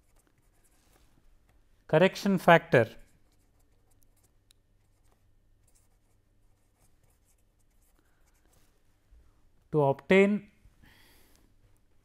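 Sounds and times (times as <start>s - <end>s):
pen scratching on paper: 0.0s - 0.8s, 3.1s - 8.4s
low room hum: 0.0s - 12.0s.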